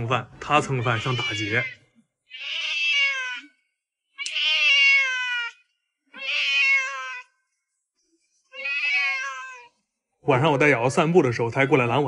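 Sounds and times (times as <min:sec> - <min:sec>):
cat meowing loudly: 0:00.6 - 0:07.3, 0:08.5 - 0:09.8.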